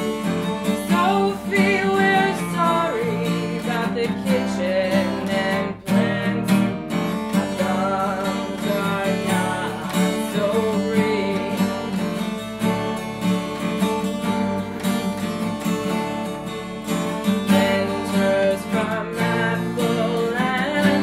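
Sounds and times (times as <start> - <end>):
acoustic guitars strumming chords: 0.0 - 21.0.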